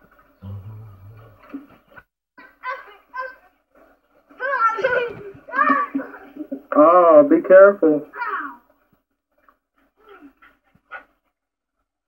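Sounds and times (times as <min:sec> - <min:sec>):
small dog panting: 0:09.4 - 0:11.5.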